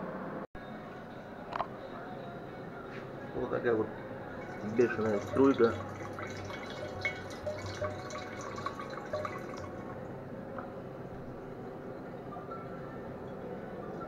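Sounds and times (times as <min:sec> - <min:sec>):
liquid trickling into glass bottle: 0:04.3 - 0:10.0.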